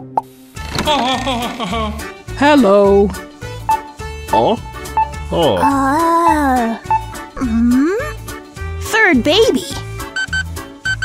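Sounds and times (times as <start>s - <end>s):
children's music: 0.6s - 11.0s
child giggling: 0.8s - 2.0s.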